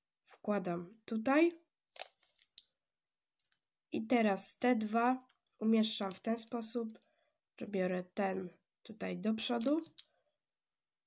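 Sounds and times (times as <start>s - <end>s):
puzzle cube clicking: 9.4s - 10.1s.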